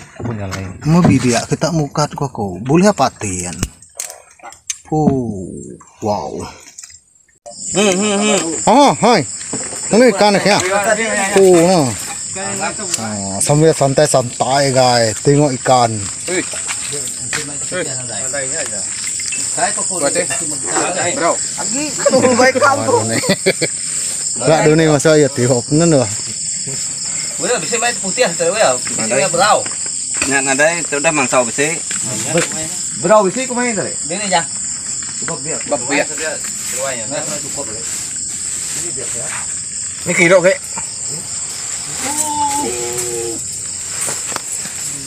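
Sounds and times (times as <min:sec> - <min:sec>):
people talking indistinctly: 0:00.0 - 0:06.7, 0:07.5 - 0:45.0
night insects chorus: 0:00.0 - 0:45.0.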